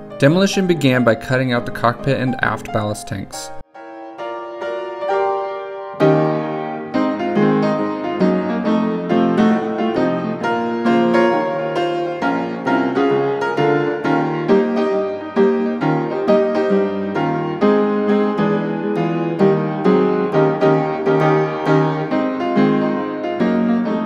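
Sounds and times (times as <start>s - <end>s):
piano music: 0.0s - 24.0s.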